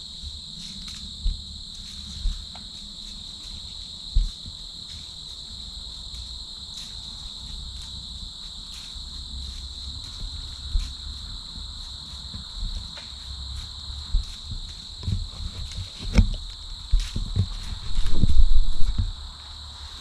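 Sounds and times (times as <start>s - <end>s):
insects trilling: 0.0s - 20.0s.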